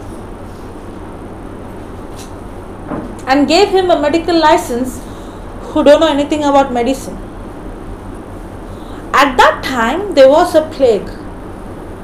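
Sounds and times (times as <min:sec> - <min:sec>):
low hum and rumble: 0:00.0 - 0:12.0.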